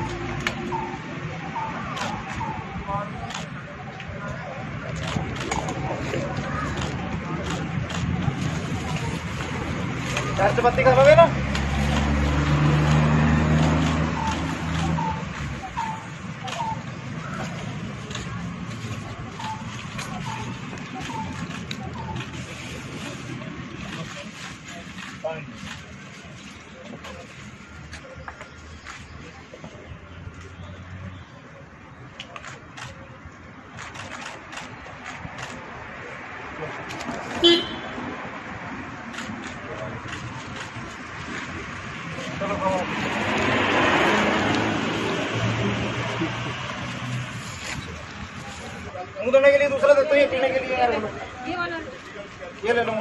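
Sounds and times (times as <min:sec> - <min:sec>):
street background noise: 0:00.0 - 0:53.0
vehicle engine humming: 0:00.0 - 0:53.0
vehicle horn toot: 0:37.4 - 0:38.0.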